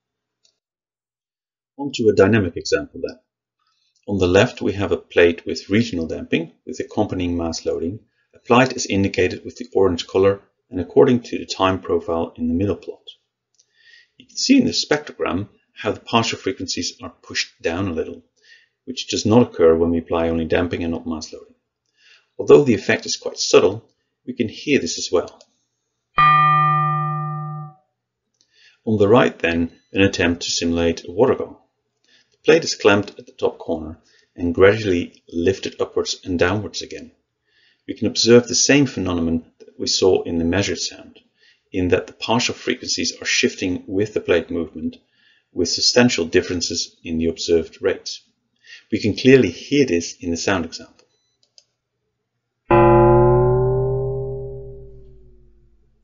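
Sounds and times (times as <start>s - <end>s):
synthesized metal plate ringing: 26.2s - 27.8s, 52.7s - 55.9s.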